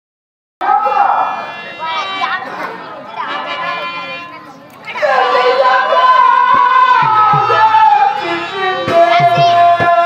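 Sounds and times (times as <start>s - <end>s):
held harmonium note: 0.6s - 10.0s.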